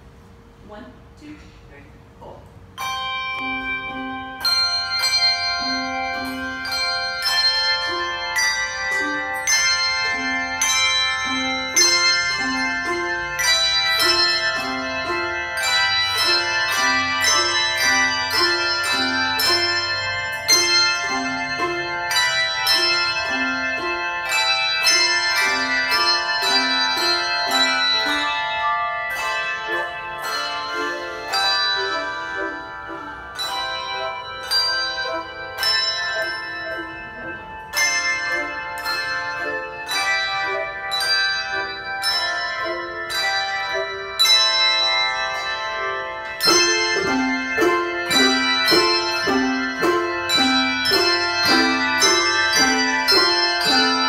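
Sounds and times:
low two-note bass bells: 1.7s - 54.0s
handbell choir playing: 2.7s - 54.0s.

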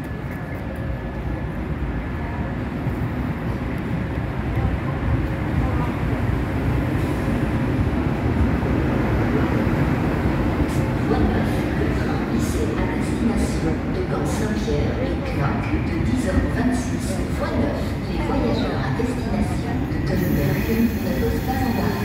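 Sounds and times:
train rumbling past: 0.0s - 22.0s.

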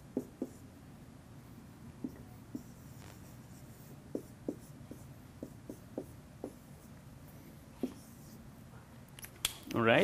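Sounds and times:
marker writing on whiteboard: 0.0s - 0.7s, 2.0s - 7.0s, 7.8s - 8.4s.

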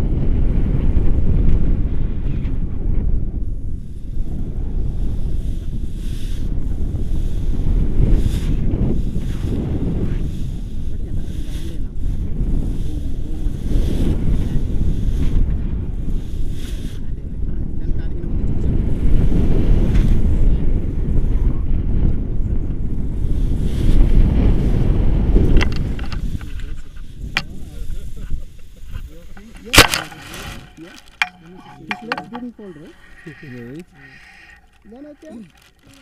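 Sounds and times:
wind buffeting microphone: 0.0s - 36.0s
short knocks: 29.4s - 36.0s.

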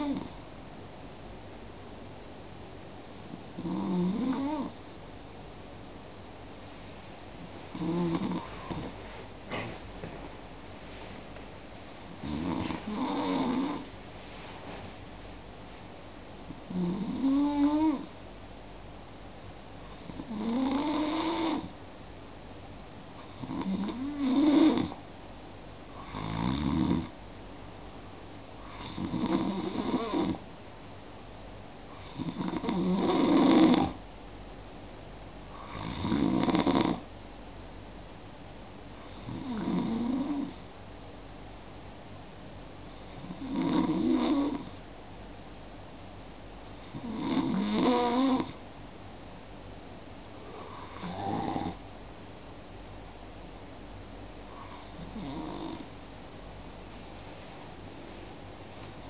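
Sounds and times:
rattling snoring: 3.2s - 4.8s, 7.7s - 9.7s, 12.0s - 14.0s, 16.4s - 18.1s, 19.9s - 21.7s, 23.2s - 25.0s, 28.7s - 30.4s, 32.0s - 34.0s, 35.6s - 37.0s, 39.0s - 40.6s, 43.0s - 44.8s, 46.7s - 48.6s, 50.6s - 51.8s, 54.6s - 55.9s.

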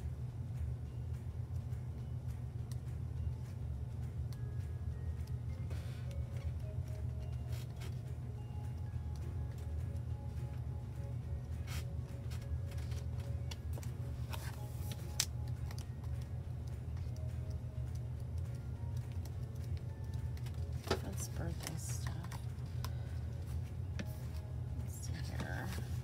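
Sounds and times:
paper pages flipped: 11.6s - 16.3s
paper snaps and taps: 12.3s - 17.2s.

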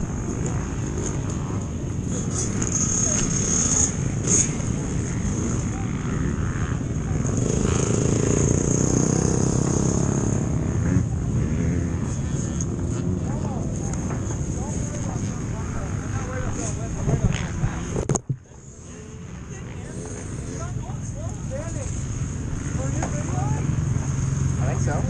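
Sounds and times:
motorbike engine at low revs: 0.0s - 25.0s.

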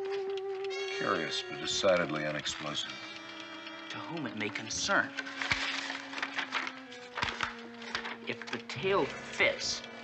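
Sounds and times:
low held music notes: 0.0s - 10.0s
paper unfolding rustle: 5.2s - 8.7s.

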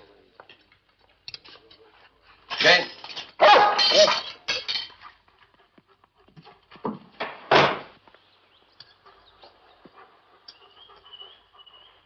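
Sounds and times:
dog barking: 3.4s - 4.2s.

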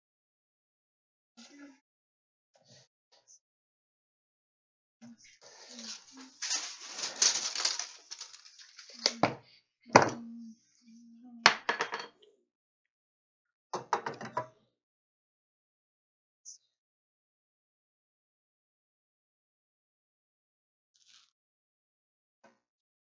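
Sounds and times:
wood rubbing and scraping: 5.4s - 9.2s.

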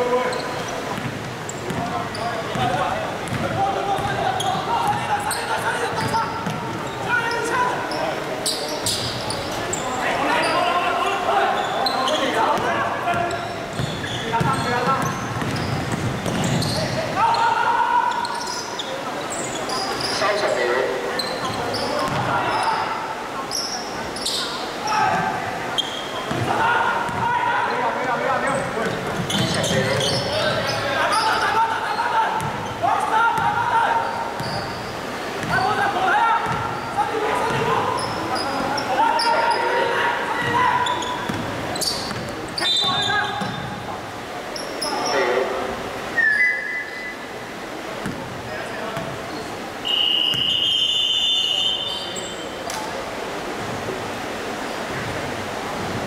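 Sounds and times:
players calling out: 0.0s - 43.8s
basketball bouncing on court: 0.9s - 5.2s, 5.9s - 7.0s, 12.6s - 17.0s, 21.4s - 22.3s, 26.3s - 26.5s, 28.8s - 30.3s, 32.4s - 32.7s, 34.4s - 34.8s, 35.4s - 35.6s, 36.4s - 36.8s, 37.4s - 38.2s, 41.2s - 42.3s, 43.4s - 43.7s, 48.0s - 48.3s.

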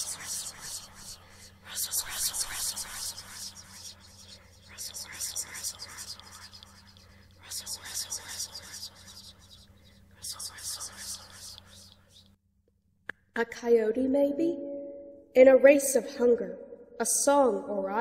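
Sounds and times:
woman whispering: 0.0s - 12.2s.

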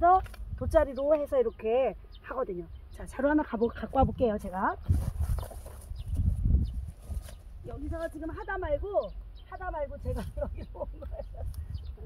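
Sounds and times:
plants brushing against legs: 4.5s - 8.6s.

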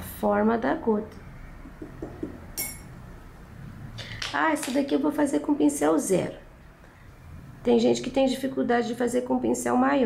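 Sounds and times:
paintbrush clinking on jar: 1.8s - 2.9s.

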